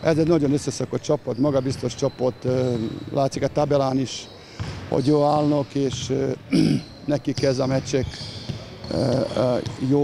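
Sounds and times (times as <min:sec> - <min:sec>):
basketballs dribbled on court floor: 0:04.6 - 0:06.3, 0:07.2 - 0:10.0
man speaking: 0:08.9 - 0:10.0.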